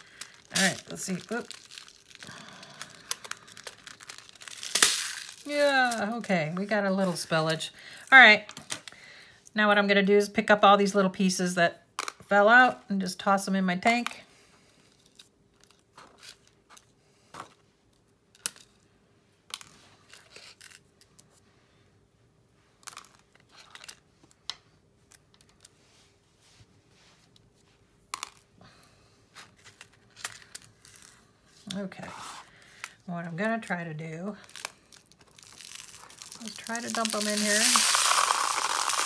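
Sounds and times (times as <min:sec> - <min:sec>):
small clicks of beads: 0:35.3 - 0:39.0.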